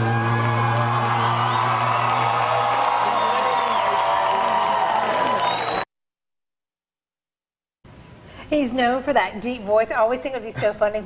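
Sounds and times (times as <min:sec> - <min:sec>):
crowd cheering and whooping: 0:00.0 - 0:05.8.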